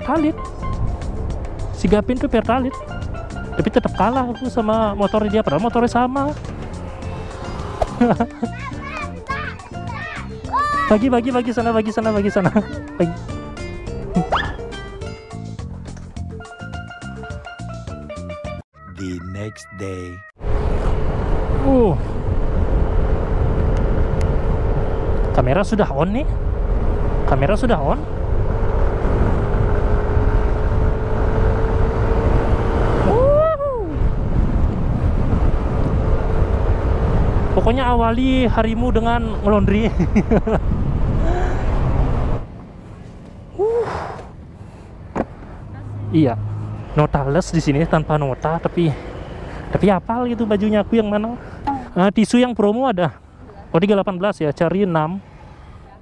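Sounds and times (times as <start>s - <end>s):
background music: 0.0s - 20.3s
scooter engine drone: 2.7s - 8.8s, 20.4s - 39.3s
children shouting: 8.5s - 11.0s
wind buffeting microphone: 28.1s - 43.5s.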